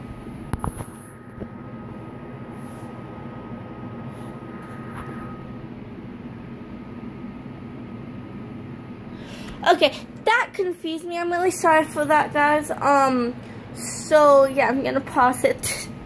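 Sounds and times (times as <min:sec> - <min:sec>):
low hum and hiss: 0:00.0 - 0:16.0
faint thin high tone: 0:04.1 - 0:05.8.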